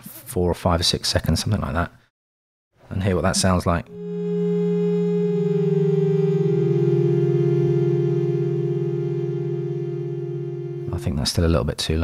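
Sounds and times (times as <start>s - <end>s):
synth pad chord: 3.4s - 11.2s.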